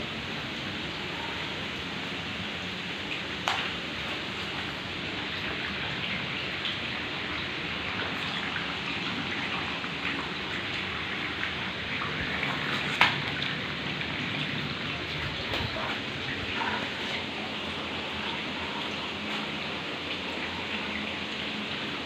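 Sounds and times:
water running over rock: 0:00.6 - 0:22.0.

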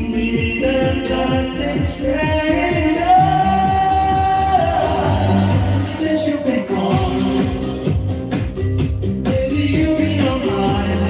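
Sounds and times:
man singing karaoke: 0:00.0 - 0:08.1, 0:09.2 - 0:11.0
pop dance backing track: 0:00.0 - 0:11.0.

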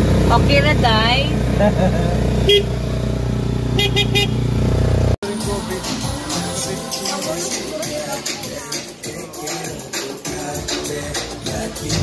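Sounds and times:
vehicle engine running: 0:00.0 - 0:12.0
horn beeps: 0:02.4 - 0:02.8, 0:03.7 - 0:04.5.

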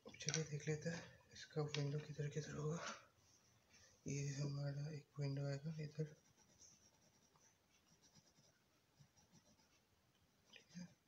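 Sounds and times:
pencil scratching on paper: 0:05.4 - 0:10.0.

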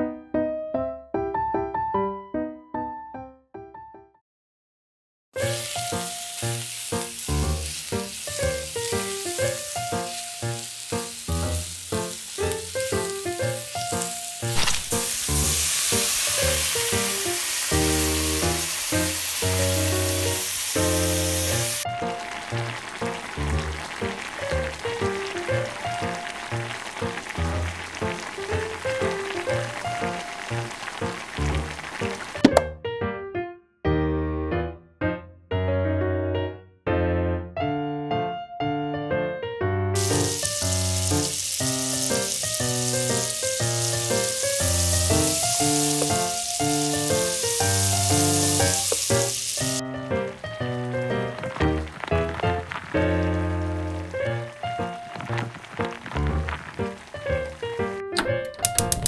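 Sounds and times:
background piano music: 0:00.0 - 0:04.2, 0:05.4 - 0:59.0
food sizzling in a pot: 0:05.4 - 0:32.5, 0:40.0 - 0:58.0.

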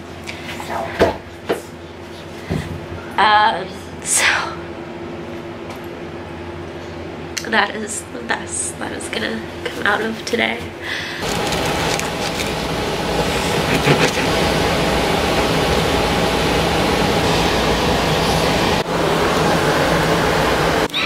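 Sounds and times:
loud rushing noise: 0:11.2 - 0:20.9.

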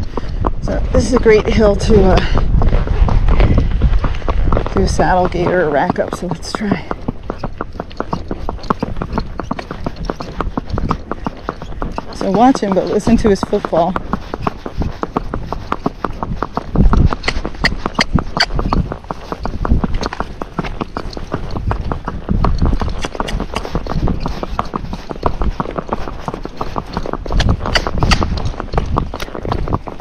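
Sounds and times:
hoofbeats on paved road: 0:00.0 - 0:30.0.

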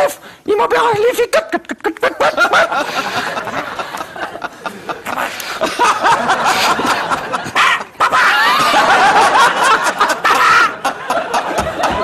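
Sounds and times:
studio audience laughing: 0:01.4 - 0:12.0.

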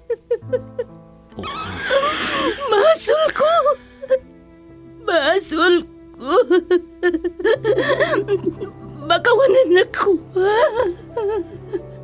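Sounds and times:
dramatic background music: 0:01.3 - 0:12.0
person sobbing and wailing: 0:01.4 - 0:04.2, 0:10.4 - 0:11.9.

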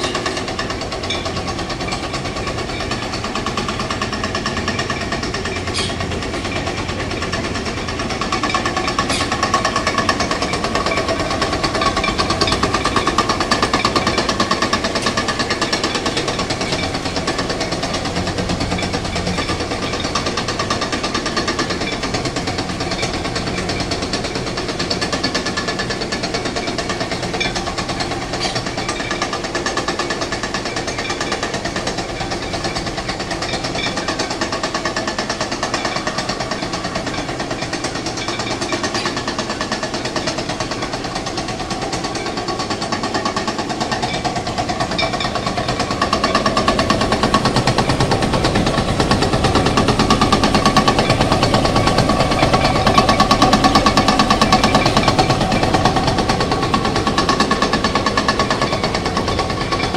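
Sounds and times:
corn mill grinding: 0:00.0 - 0:59.9.

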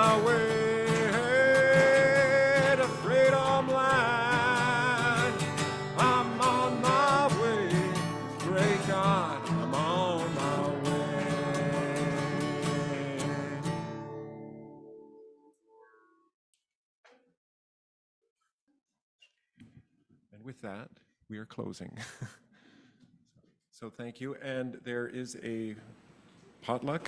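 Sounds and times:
person singing with vibrato: 0:00.0 - 0:14.4
acoustic guitar strummed: 0:00.0 - 0:16.1.

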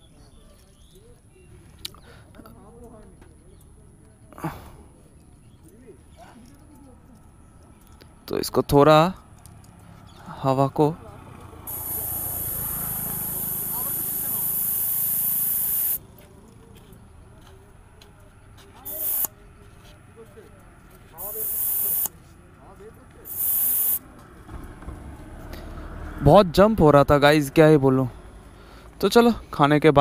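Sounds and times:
air hissing from tyre valve: 0:11.7 - 0:16.0, 0:18.9 - 0:19.3, 0:21.2 - 0:22.2, 0:23.3 - 0:24.1.

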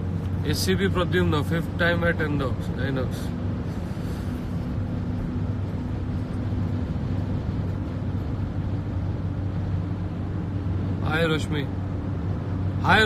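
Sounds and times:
car engine and road drone: 0:00.0 - 0:13.0.

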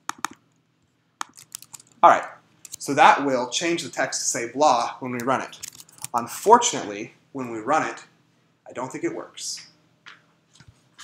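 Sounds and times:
keyboard and mouse clicks: 0:00.0 - 0:00.4, 0:01.2 - 0:02.0, 0:02.6 - 0:02.8, 0:05.2 - 0:06.2.

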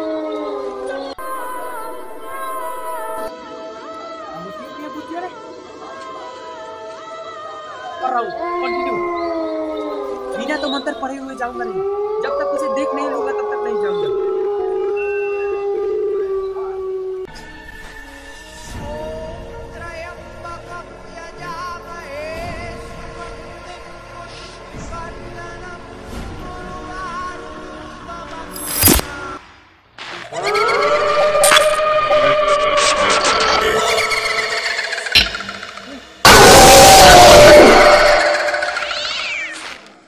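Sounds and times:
steady howl-like wail: 0:11.6 - 0:17.3, 0:30.4 - 0:35.0, 0:36.2 - 0:39.0
eerie pulsing tone falling in pitch: 0:30.4 - 0:39.6.

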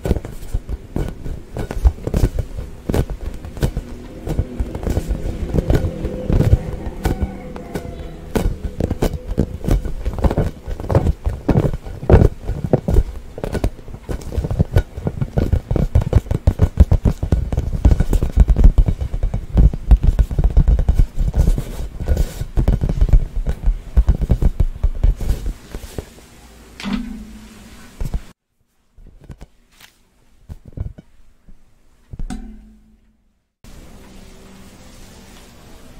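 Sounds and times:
skin squeaking on rubber: 0:00.2 - 0:13.2.

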